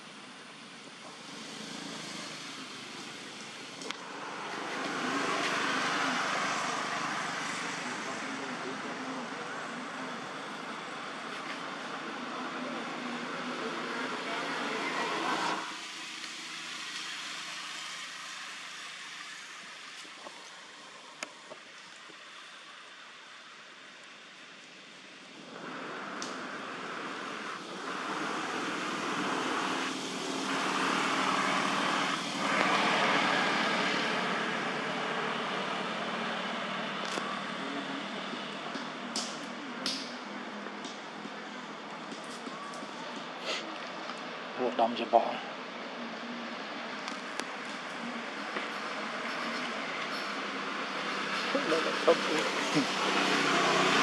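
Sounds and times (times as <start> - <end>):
outdoor background noise: 0.0 - 54.0
indistinct voices: 2.2 - 21.7, 25.4 - 54.0.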